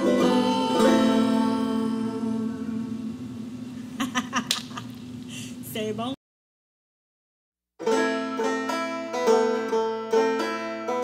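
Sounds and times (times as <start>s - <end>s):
banjo chord ringing: 0.0s - 3.0s, 7.8s - 11.0s.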